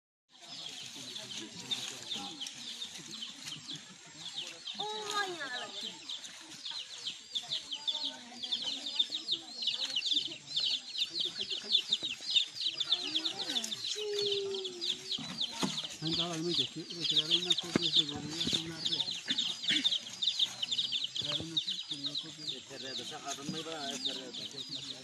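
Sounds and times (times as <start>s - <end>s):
scattered voices of people: 0.3s - 25.0s
small animals chirping rapidly: 0.4s - 25.0s.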